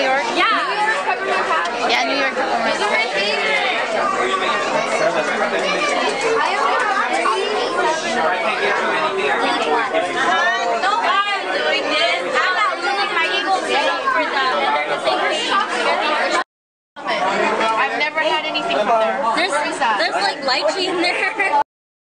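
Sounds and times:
chatter of people talking: 0:00.0 - 0:21.7.

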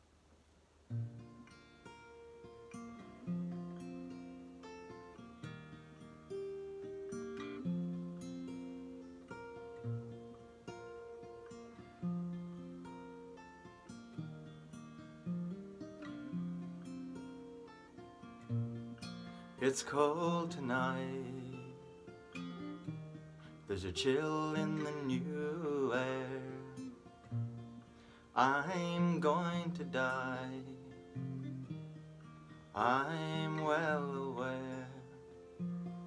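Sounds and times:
acoustic guitar playing: 0:00.8 - 0:36.0.

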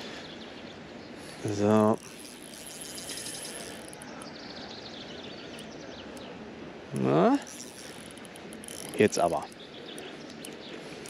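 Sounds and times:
bird singing: 0:00.0 - 0:11.0
outdoor background noise: 0:00.0 - 0:11.0.

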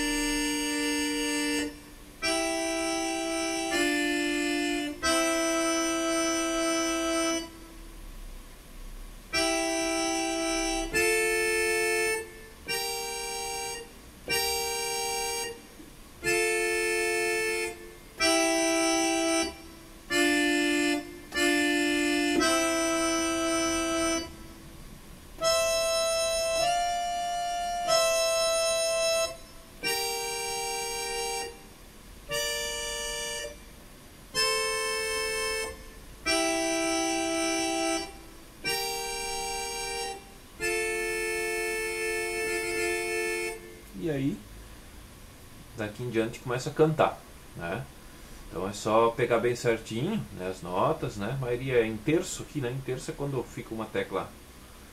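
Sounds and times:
keyboard playing two-note chords: 0:00.0 - 0:07.8, 0:09.3 - 0:24.7, 0:25.4 - 0:44.4.

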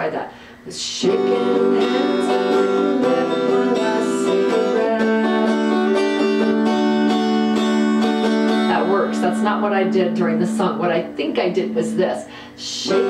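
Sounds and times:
electric guitar strumming: 0:01.0 - 0:13.0.

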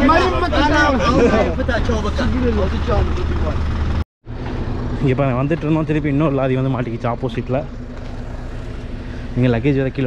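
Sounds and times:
people talking: 0:00.0 - 0:03.6, 0:05.0 - 0:07.7, 0:09.4 - 0:10.0
vehicle engine rumble: 0:00.0 - 0:10.0.

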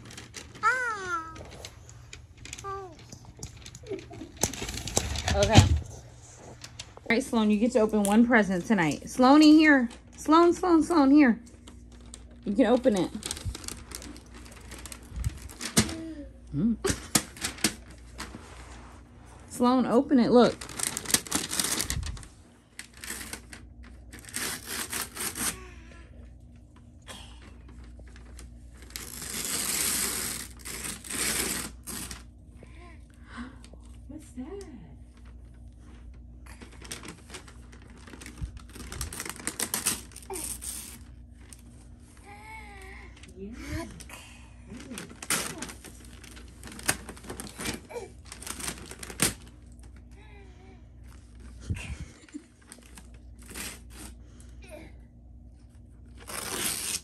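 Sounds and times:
wrapping paper tearing: 0:00.0 - 0:01.7, 0:11.6 - 0:18.4, 0:20.1 - 0:26.0, 0:27.6 - 0:32.4, 0:35.2 - 0:43.3, 0:44.7 - 0:50.1, 0:52.2 - 0:54.4, 0:56.0 - 0:57.0
toddler voice sounds: 0:00.6 - 0:01.6, 0:02.6 - 0:03.1.

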